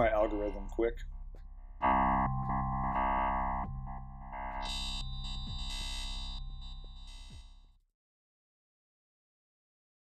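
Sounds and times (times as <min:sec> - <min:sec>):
sustained synthesizer tone: 0:00.0 - 0:07.4.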